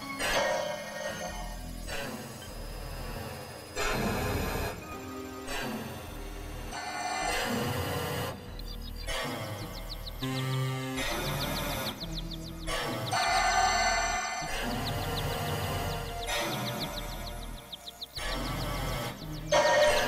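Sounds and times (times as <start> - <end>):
electronic synthesizer drones: 0.0 - 20.0.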